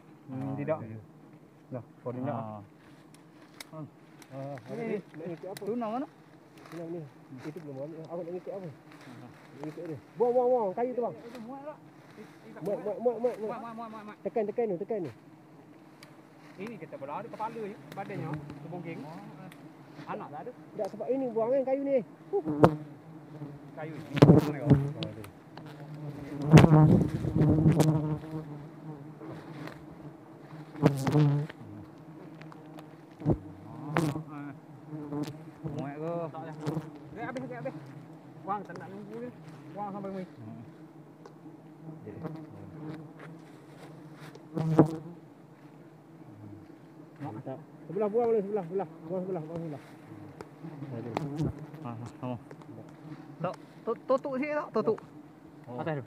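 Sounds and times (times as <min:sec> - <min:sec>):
bees buzzing: 0:00.0 - 0:56.0.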